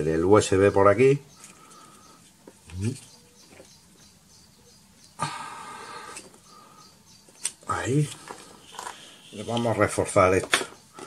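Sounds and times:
plastic scraping squeak: 7.4 - 11.0.

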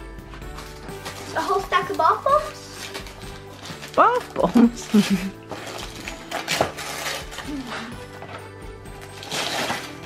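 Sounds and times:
background music: 0.0 - 10.0
wrapping paper tearing: 0.6 - 8.0, 9.0 - 10.0.

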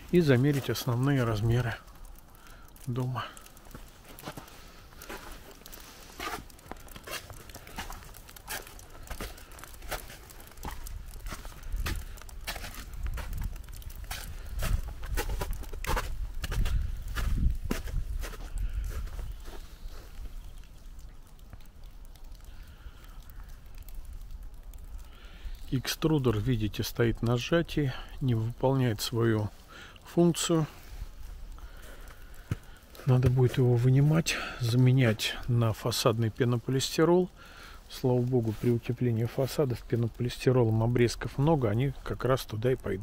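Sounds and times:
footsteps crunching in snow: 3.7 - 20.4
wind rumble on microphone: 12.8 - 19.4.

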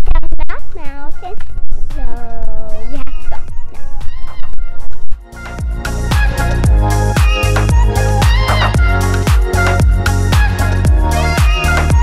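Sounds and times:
music with low beat: 0.5 - 12.0.

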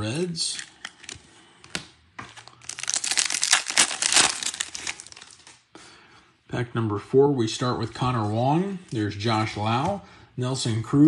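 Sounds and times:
wrapper torn and crinkled: 2.4 - 5.6.

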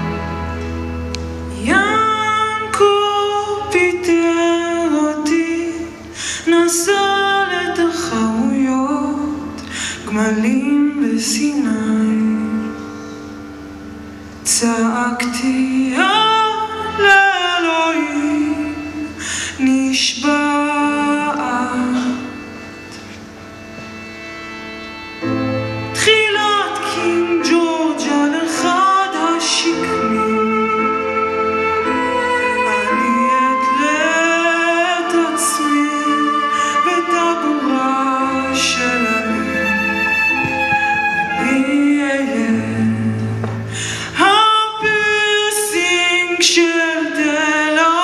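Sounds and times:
live band music: 0.0 - 10.8, 11.7 - 48.0
violin long held notes: 0.0 - 47.8.

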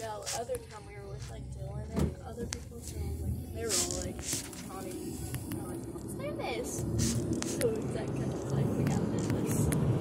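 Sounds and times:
car road rumble from inside: 0.0 - 10.0.

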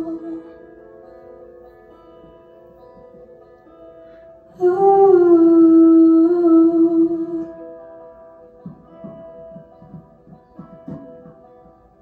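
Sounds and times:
soft plucked-string music: 0.0 - 12.0.

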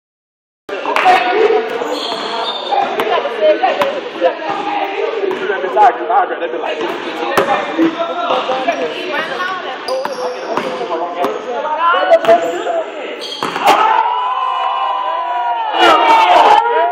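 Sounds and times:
people talking: 0.7 - 13.9.

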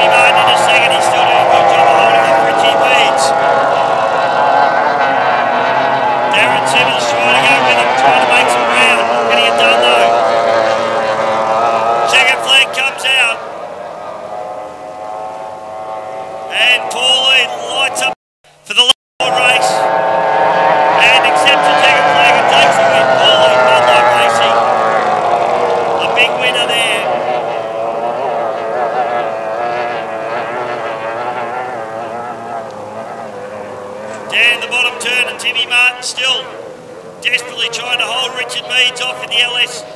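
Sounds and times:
outboard engine whine: 0.0 - 18.2, 19.2 - 39.9
water rushing: 0.0 - 18.2, 19.2 - 39.9.

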